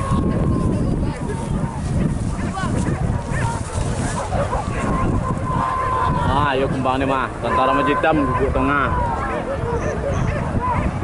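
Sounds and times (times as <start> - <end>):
people's voices: 0.0 - 11.0
dogs barking and yelping: 1.6 - 6.1, 7.4 - 11.0.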